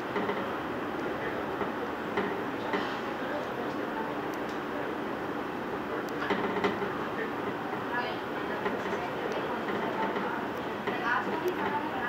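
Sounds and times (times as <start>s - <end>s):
track clicks: 0.0s - 12.0s
train rumble and rail noise: 0.0s - 12.0s.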